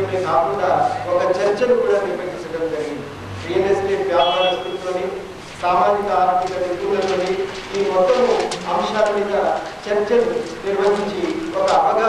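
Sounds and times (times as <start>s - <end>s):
man talking into a microphone: 0.0s - 12.0s.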